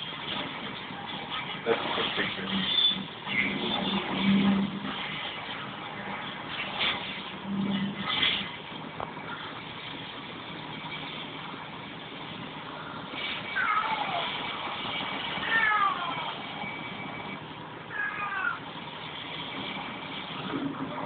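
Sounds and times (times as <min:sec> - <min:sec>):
cat meowing: 0:13.5 - 0:14.3, 0:15.4 - 0:16.4, 0:17.9 - 0:18.6.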